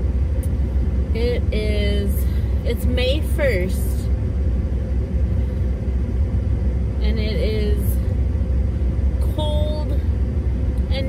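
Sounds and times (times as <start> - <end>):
car engine rumble inside cabin: 0.0 - 11.0.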